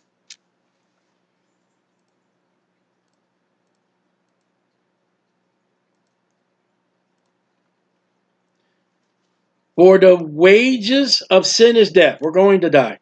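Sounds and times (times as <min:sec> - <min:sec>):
low room hum: 0:00.0 - 0:13.0
computer mouse clicks: 0:01.7 - 0:07.7.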